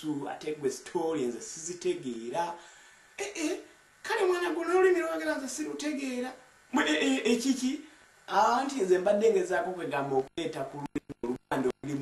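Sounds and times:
man speaking: 0.0 - 2.6, 3.2 - 12.0.

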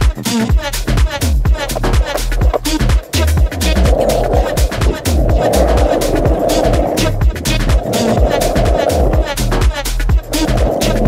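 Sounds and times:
music with heavy bass beat: 0.0 - 11.0
skateboard wheels rolling on asphalt: 0.9 - 11.0.

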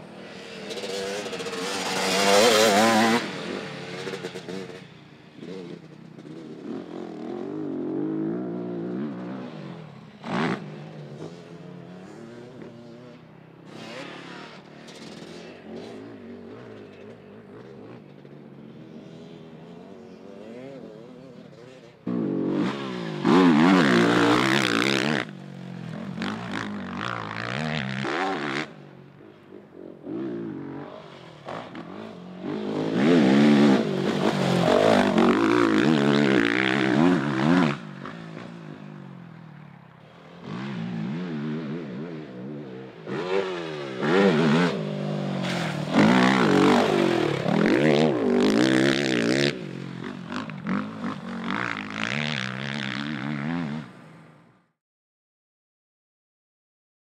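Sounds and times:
quad engine revving: 31.5 - 38.2, 43.0 - 53.8.

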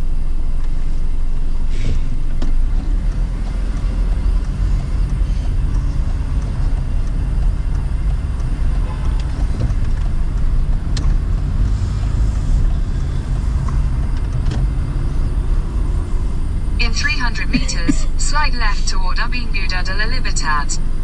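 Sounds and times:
car engine and tyres rumbling: 0.0 - 21.0.

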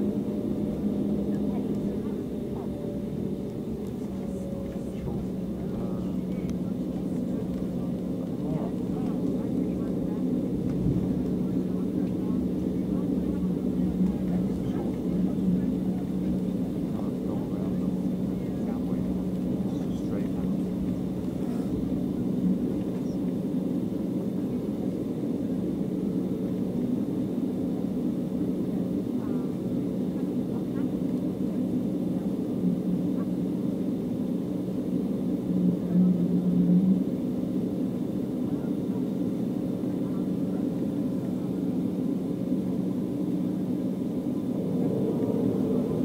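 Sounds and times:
aircraft cabin engine hum: 0.0 - 46.0.

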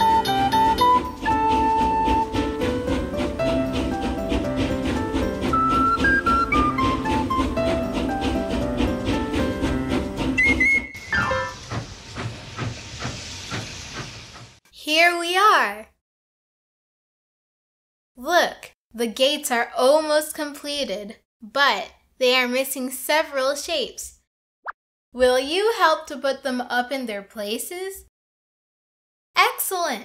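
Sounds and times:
train whistle: 0.0 - 4.1, 5.5 - 7.8, 10.2 - 11.8
plucked-string background music: 0.0 - 10.5
steam train chuffing: 0.0 - 14.6
hissing steam: 10.3 - 14.6.

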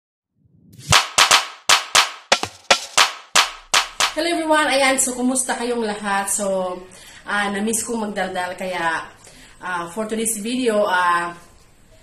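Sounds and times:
clap-like percussion hits: 0.8 - 4.2.

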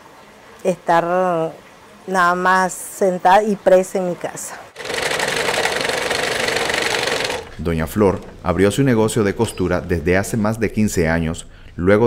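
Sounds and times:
sewing machine stitching: 4.8 - 8.3.

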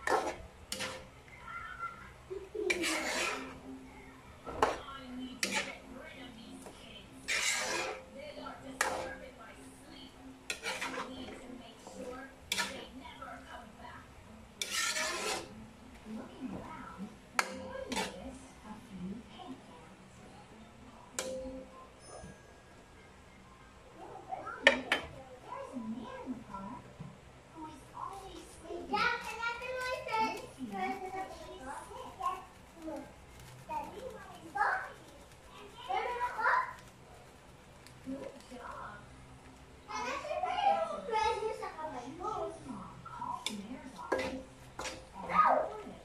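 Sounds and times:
metal spatula scraping a wok: 0.0 - 1.3, 2.5 - 3.8, 4.5 - 13.5, 14.6 - 16.6, 17.3 - 18.5, 43.0 - 45.4
children's voices: 27.7 - 33.1, 33.7 - 36.8, 39.9 - 43.6.

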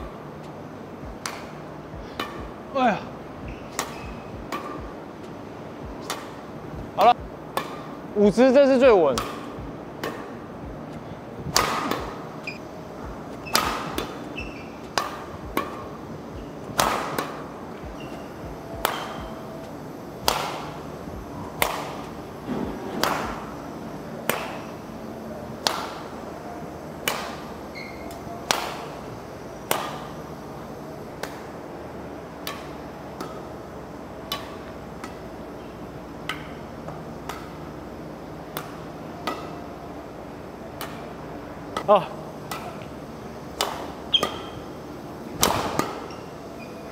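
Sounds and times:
badminton rackets hitting shuttlecocks: 1.0 - 2.6, 3.4 - 8.1, 9.1 - 10.8, 11.5 - 24.9, 25.5 - 26.3, 26.9 - 46.6.

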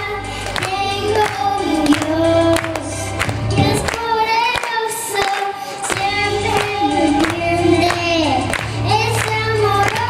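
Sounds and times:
girl singing into a microphone: 0.0 - 10.0
instrumental backing music: 0.0 - 10.0.

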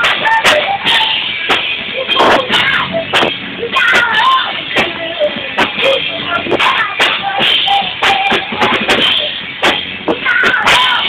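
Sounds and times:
drum and cymbal hits: 0.0 - 11.0
live rock band playing: 0.0 - 11.0
sustained guitar tones: 0.0 - 11.0.

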